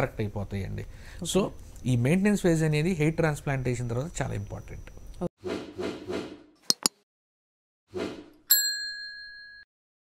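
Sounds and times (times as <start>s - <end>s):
bright bell ding: 8.5s - 9.7s.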